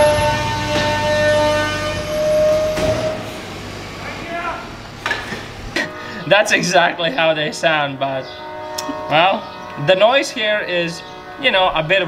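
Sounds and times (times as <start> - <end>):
vehicle horn blast: 0.0 - 4.8, 5.6 - 7.2
garbage truck engine running: 0.0 - 7.4.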